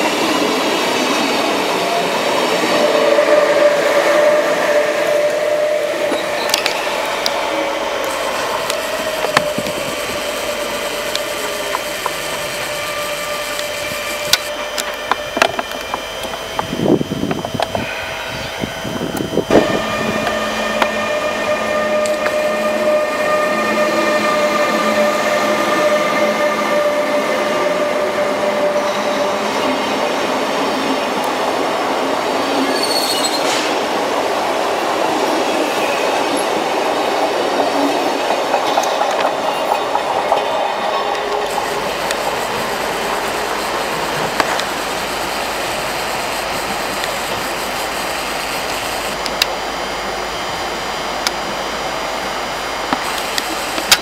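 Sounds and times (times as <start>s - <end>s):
locomotive whine: 0.0s - 54.0s
high wheel squeal: 2.7s - 30.0s, 32.4s - 33.7s
train wheels clattering on rails: 34.9s - 45.0s.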